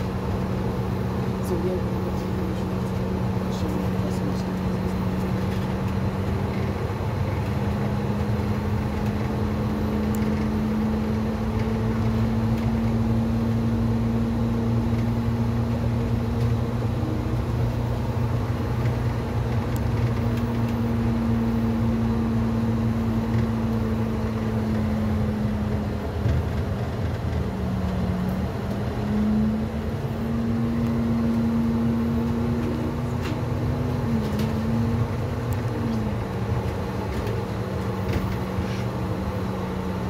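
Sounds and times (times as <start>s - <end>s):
bus engine rumble: 0.0s - 40.0s
drivetrain whine: 0.0s - 40.0s.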